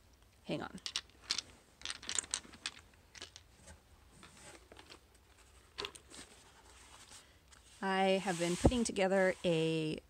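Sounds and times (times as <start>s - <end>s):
woman speaking: 0.5s - 0.8s, 7.8s - 10.0s
cardboard tray scraping on carpet: 7.7s - 9.6s.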